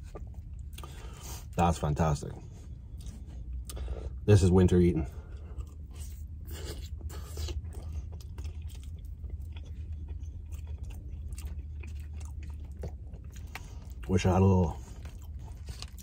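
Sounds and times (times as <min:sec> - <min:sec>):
person chewing food: 0:00.0 - 0:01.6, 0:02.4 - 0:04.2, 0:05.1 - 0:16.0.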